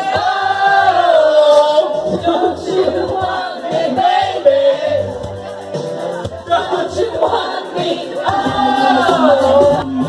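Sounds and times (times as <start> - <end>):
group of voices singing: 0.0 - 10.0
karaoke backing track: 0.0 - 10.0.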